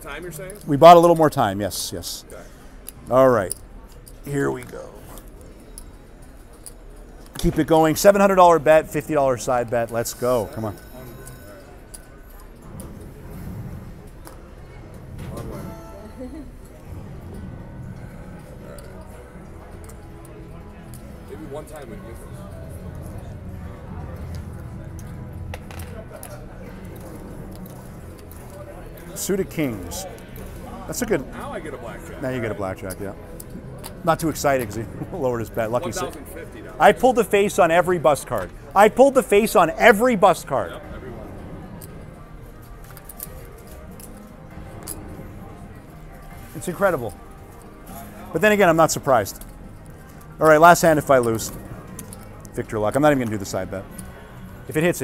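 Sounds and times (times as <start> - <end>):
background music: 0.0 - 55.0.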